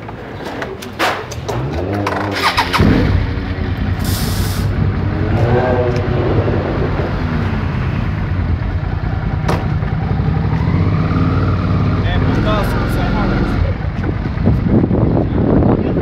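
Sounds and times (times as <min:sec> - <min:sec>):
voices talking: 0:11.9 - 0:14.4.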